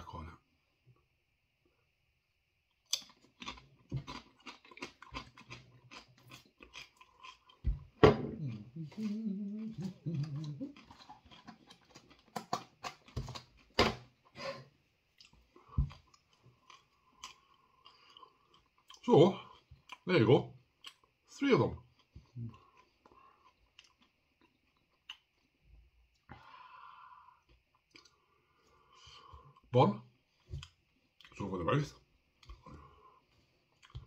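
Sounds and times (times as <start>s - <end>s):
person murmuring and laughing: 8.3s - 10.9s.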